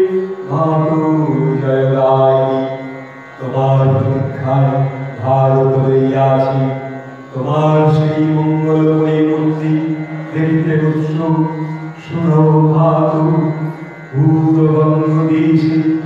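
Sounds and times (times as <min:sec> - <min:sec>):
mantra chanting: 0:00.0 - 0:16.0
musical accompaniment: 0:00.0 - 0:16.0.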